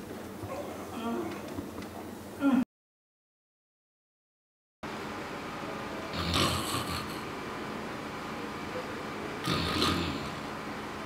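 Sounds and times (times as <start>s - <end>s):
man snoring: 6.1s - 7.2s, 9.4s - 10.5s.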